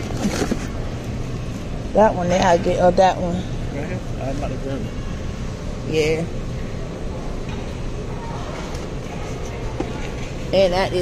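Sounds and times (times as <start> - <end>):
low hum of store background: 0.0 - 11.0
faint voices: 1.9 - 11.0.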